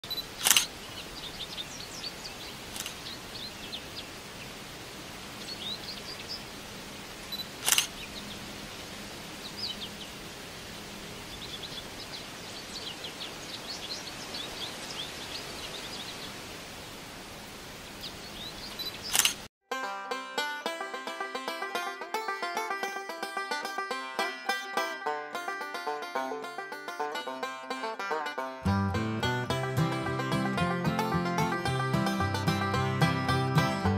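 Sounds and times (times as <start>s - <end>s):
small birds chirping: 0.0s - 4.6s, 5.2s - 10.3s, 11.2s - 16.6s, 17.9s - 19.5s
camera shutter clicks: 0.4s - 0.7s, 7.6s - 7.9s, 19.1s - 19.4s.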